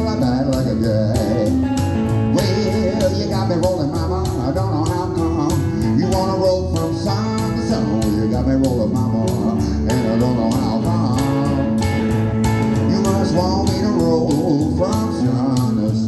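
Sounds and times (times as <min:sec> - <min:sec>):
electric guitar playing blues: 0:00.0 - 0:16.0
plucked double bass: 0:00.0 - 0:16.0.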